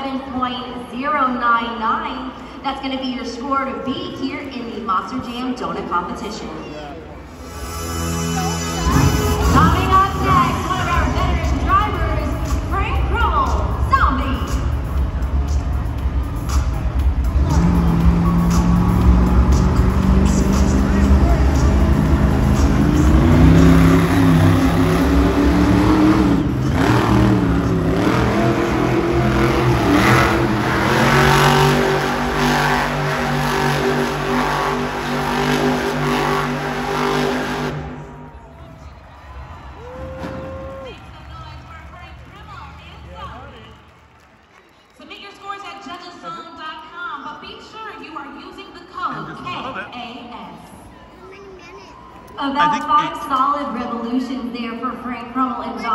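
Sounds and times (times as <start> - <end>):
truck engine revving hard: 7.3 - 38.2
arena sound: 47.3 - 54.2.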